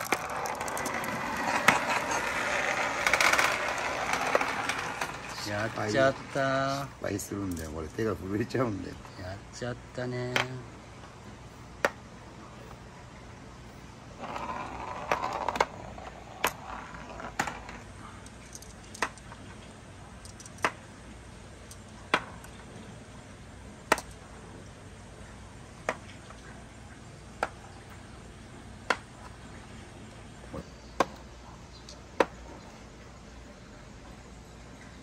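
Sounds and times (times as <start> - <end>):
marbles clicking on wooden board: 0.0 - 6.9, 14.2 - 19.5, 20.2 - 20.9, 23.9 - 24.2.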